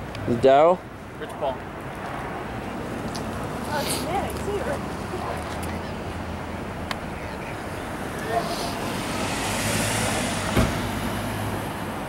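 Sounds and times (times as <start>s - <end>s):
steady low traffic hum: 0.0s - 12.0s
vehicle passing: 0.5s - 12.0s
sharp thump: 10.5s - 10.9s.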